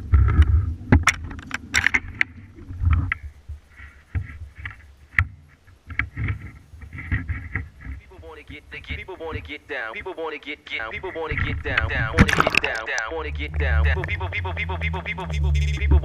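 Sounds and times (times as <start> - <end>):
phone rustling against clothing: 1.4 - 13.0
low microphone rumble: 10.8 - 16.0.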